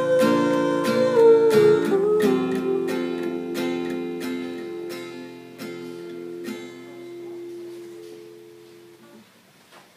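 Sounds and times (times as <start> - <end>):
acoustic guitar chord ringing: 0.0 - 9.2.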